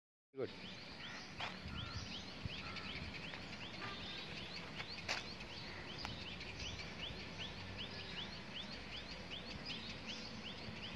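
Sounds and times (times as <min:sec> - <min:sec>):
bird calling: 0:00.4 - 0:10.9
outdoor background noise: 0:00.4 - 0:10.9.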